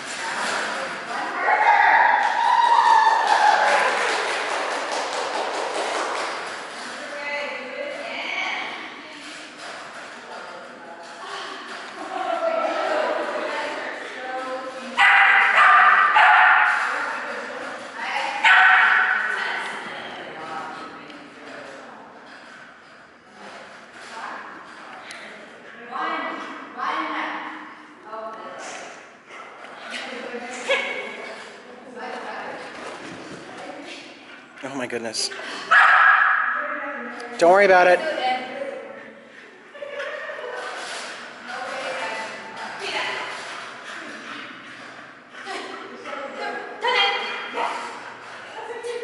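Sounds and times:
small dog barking: 15.0 - 16.7, 18.4 - 19.2, 35.7 - 36.4.

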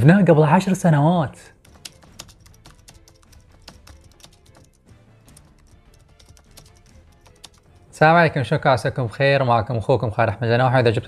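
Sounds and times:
quiet background music: 0.0 - 11.0
keyboard typing clicks: 1.6 - 7.9.

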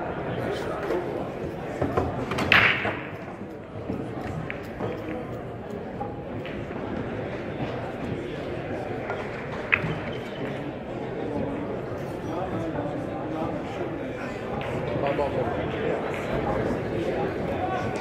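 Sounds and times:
murmur of crowd: 0.0 - 18.0
billiard balls knocking together: 1.4 - 8.2, 9.0 - 10.6
cue ball cracking into racked balls: 1.8 - 3.3.

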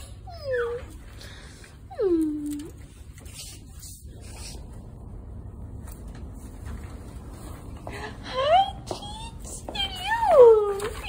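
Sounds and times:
puppy whimpering: 0.0 - 1.1.

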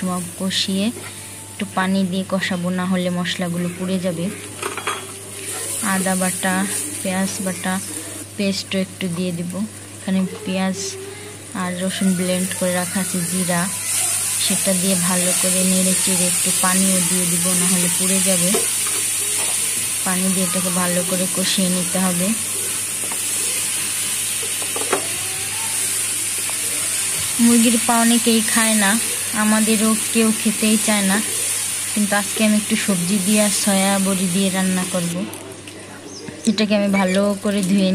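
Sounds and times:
onions sizzling in oil: 0.0 - 35.6, 36.6 - 37.9
person talking: 5.8 - 18.6, 36.4 - 37.9.

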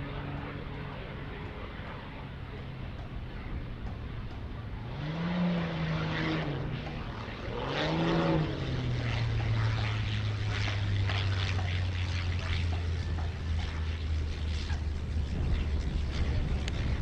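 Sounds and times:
propeller plane engine: 0.0 - 17.0.

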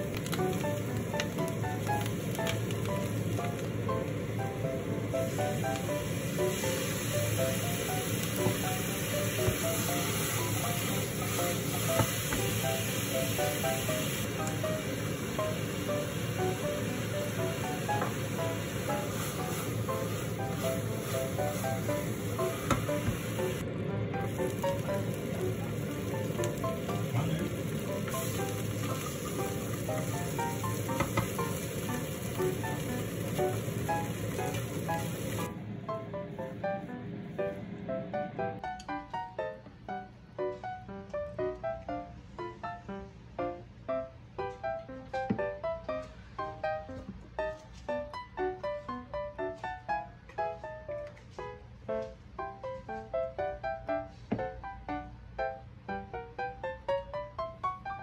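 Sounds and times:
mushrooms sizzling in a pan: 0.0 - 23.6, 24.2 - 35.5
light background music: 0.0 - 58.0.

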